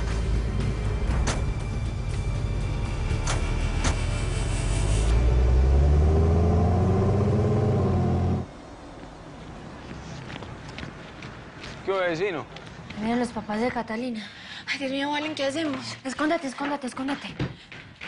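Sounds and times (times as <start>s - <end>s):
background music: 0.0s - 8.4s
car engines pulling away: 0.0s - 11.6s.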